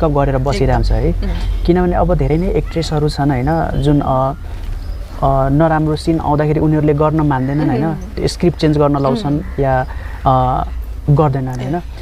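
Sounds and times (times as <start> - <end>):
man talking: 0.0 - 4.4, 5.2 - 12.0
faint low hum: 0.0 - 12.0.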